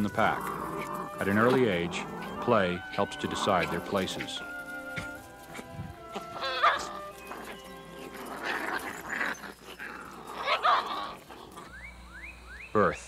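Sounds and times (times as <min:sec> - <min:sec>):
background music: 0:00.0 - 0:10.3
wolf pups calling: 0:00.0 - 0:12.8.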